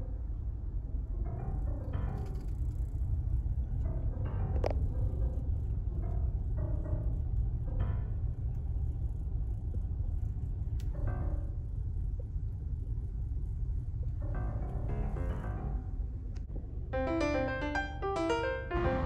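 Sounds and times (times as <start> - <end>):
slow solo piano music: 17.0 - 19.0.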